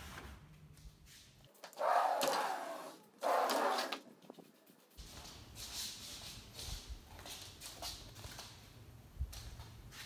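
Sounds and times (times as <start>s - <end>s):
screen door sliding on track: 1.6s - 4.0s.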